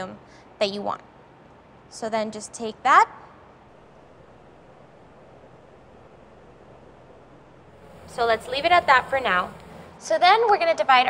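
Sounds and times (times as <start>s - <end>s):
faint background hiss: 0.0s - 11.0s.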